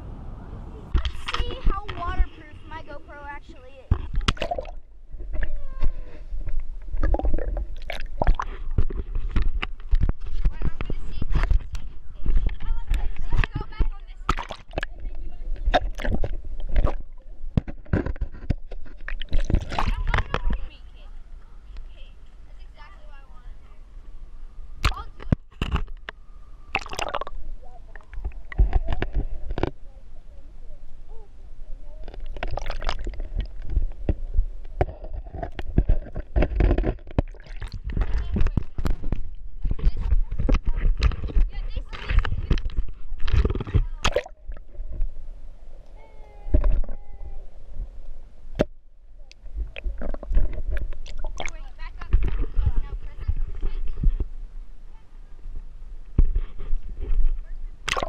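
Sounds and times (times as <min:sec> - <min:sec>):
faint voices: 0:00.0 - 0:04.0, 0:27.4 - 0:32.4, 0:45.8 - 0:47.8
sharp underwater knocks: 0:03.9 - 0:05.5, 0:06.4 - 0:20.6, 0:24.8 - 0:26.2, 0:32.1 - 0:45.1
water splashing and gurgling: 0:03.9 - 0:20.7, 0:26.6 - 0:29.8, 0:32.0 - 0:45.2, 0:49.4 - 0:54.1, 0:57.8 - 0:58.0.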